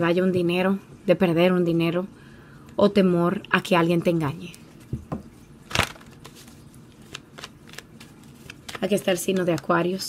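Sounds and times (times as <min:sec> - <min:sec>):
cards clicking and snapping: 0:05.7 - 0:09.6.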